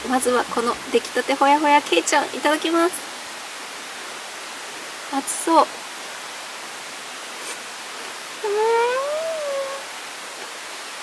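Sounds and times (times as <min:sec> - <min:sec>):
woman humming mmm while chewing: 0:08.4 - 0:09.8.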